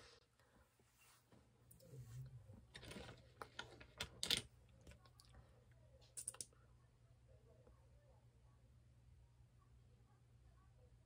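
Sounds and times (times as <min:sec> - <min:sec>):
small objects clicking: 0:06.1 - 0:06.5.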